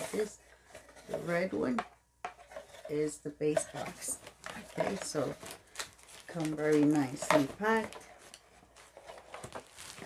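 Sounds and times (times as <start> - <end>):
bubble wrap rustling: 3.8 - 10.0.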